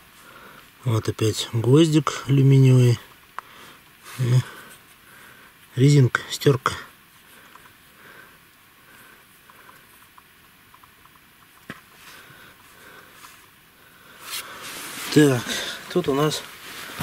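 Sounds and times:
rustling over loose soil: 0.0 - 17.0.

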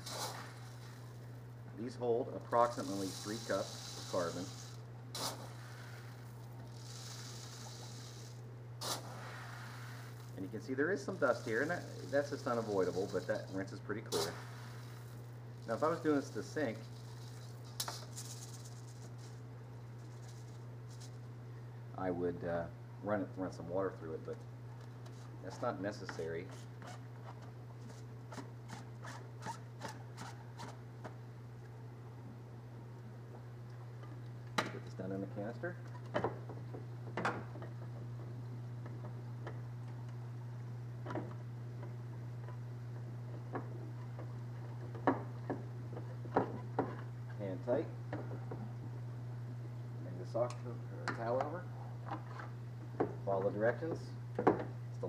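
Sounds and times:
gritty rustle of poured granules: 0.0 - 1.2, 2.5 - 21.2
steady low hum: 0.0 - 55.0.

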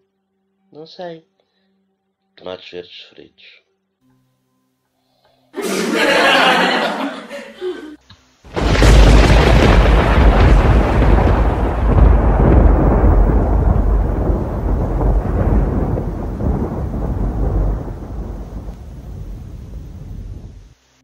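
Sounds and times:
loud peal of thunder: 8.5 - 20.7.

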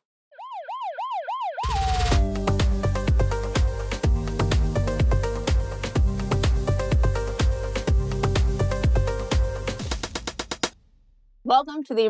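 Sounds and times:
siren yelp: 0.3 - 3.2
electronic music with beat: 1.6 - 10.7.

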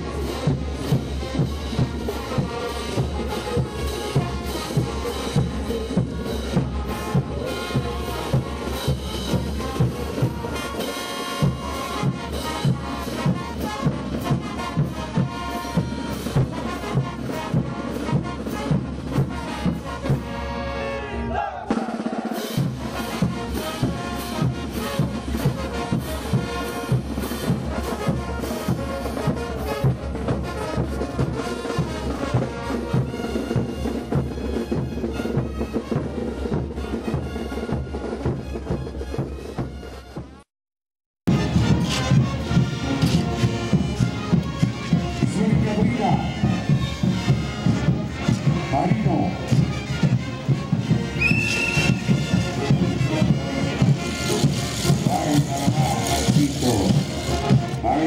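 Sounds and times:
bass drums and snare drums: 0.0 - 40.5, 41.3 - 58.0
brass band playing: 0.0 - 40.5, 41.3 - 58.0.

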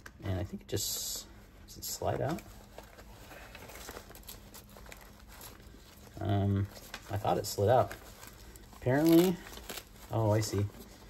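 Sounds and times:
nylon bag fabric rustling: 1.8 - 11.0.

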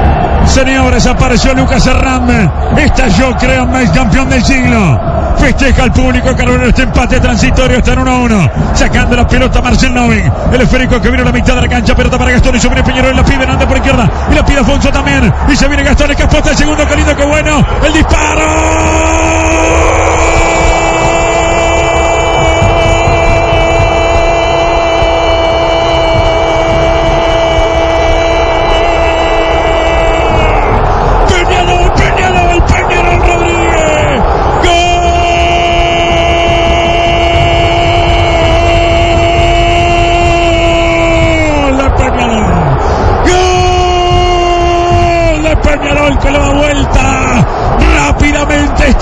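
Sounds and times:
stadium crowd roaring: 0.0 - 49.0
commentator's long goal shout: 0.1 - 49.0.

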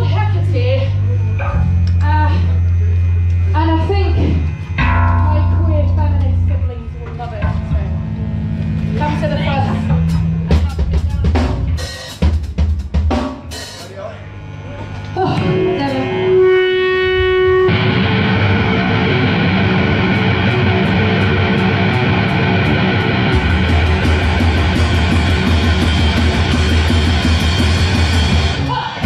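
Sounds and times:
held guitar note ringing: 2.6 - 10.8, 14.3 - 28.7
punk band playing: 3.6 - 29.0
scattered drum hits: 20.2 - 28.7.

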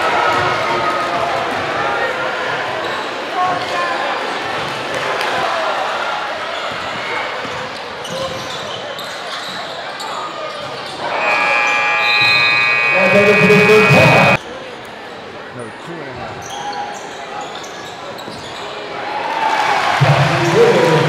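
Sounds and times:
crowd voices: 11.0 - 14.4
loud steady horn: 11.0 - 14.4.

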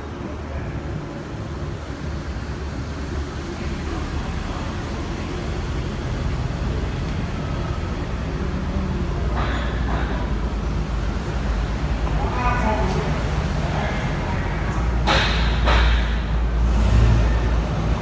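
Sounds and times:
traffic rumbling in tunnel: 0.0 - 18.0.

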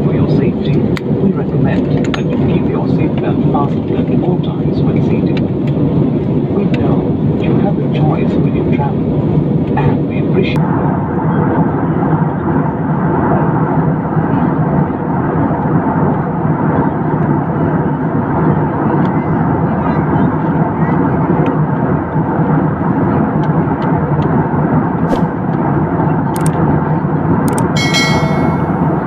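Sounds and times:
jet engines rumbling in cabin: 0.0 - 28.1.

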